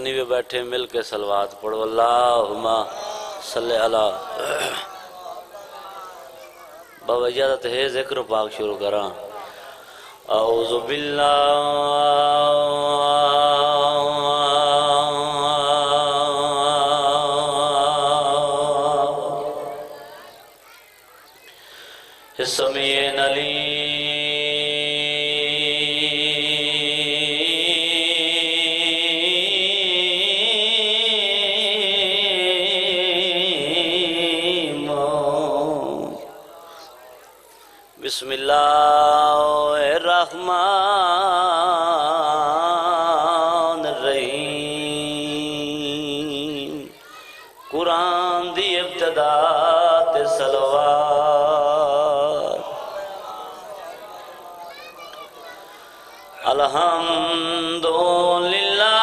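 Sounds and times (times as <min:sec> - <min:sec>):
faint background voices: 0:00.0 - 0:11.7, 0:16.2 - 0:24.3, 0:29.6 - 0:38.9, 0:41.2 - 0:59.0.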